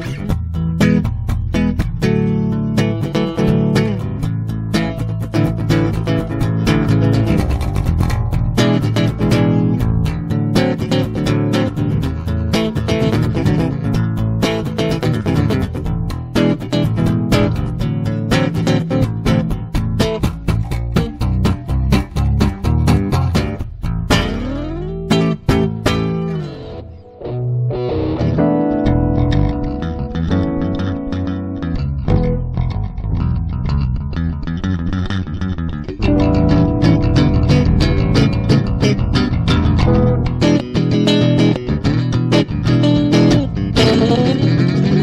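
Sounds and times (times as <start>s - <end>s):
electric bass plucked notes: 0.0s - 45.0s
electric guitar chords: 0.0s - 45.0s.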